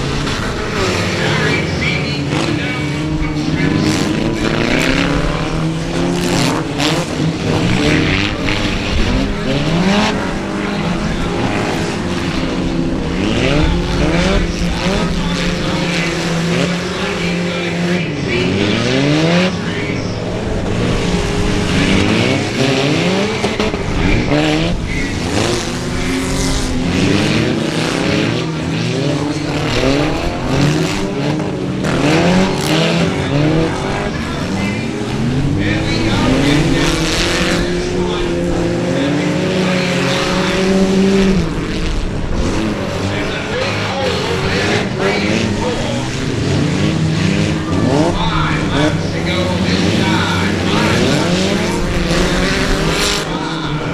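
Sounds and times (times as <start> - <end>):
car engines revving hard: 0.0 - 53.9
cars hitting each other: 0.0 - 53.9.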